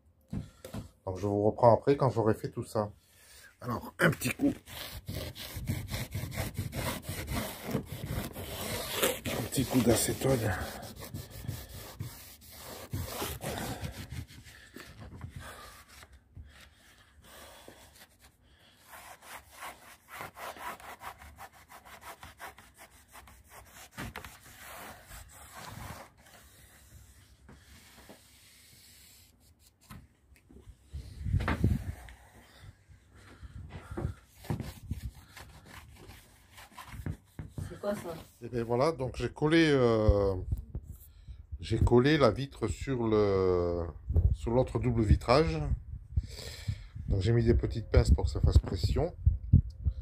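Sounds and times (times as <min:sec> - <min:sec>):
cloth rubbing on window pane: 0:04.2 - 0:14.6.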